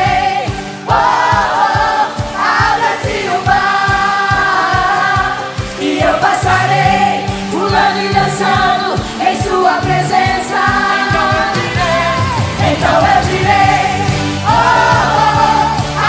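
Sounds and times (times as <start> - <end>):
full band playing: 0.0 - 16.0
group singing gospel: 0.0 - 16.0.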